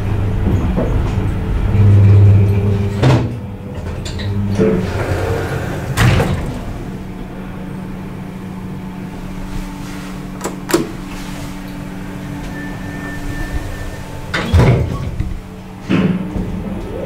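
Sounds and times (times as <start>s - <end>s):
elevator hum: 0.0s - 17.0s.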